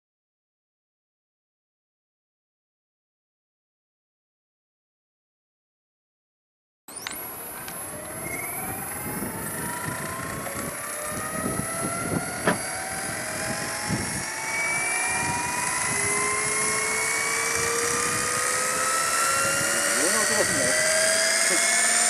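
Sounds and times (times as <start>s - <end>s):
rc helicopter motor whine: 6.9s - 22.0s.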